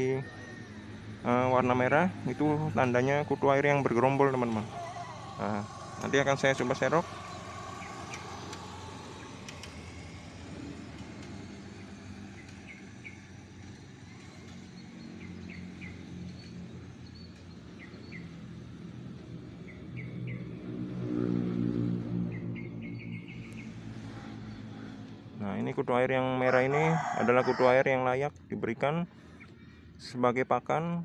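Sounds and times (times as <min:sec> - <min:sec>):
vehicle engine humming: 0:00.0 - 0:31.0
bird chirps: 0:03.9 - 0:18.4, 0:19.6 - 0:20.5, 0:22.3 - 0:25.0.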